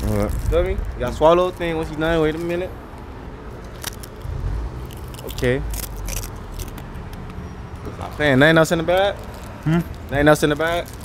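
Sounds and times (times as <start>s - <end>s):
street traffic rumble: 0.0s - 11.0s
faint crackles: 7.9s - 11.0s.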